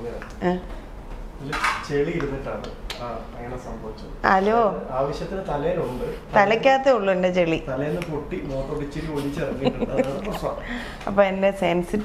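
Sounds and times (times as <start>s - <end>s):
person speaking: 7.4s - 12.0s.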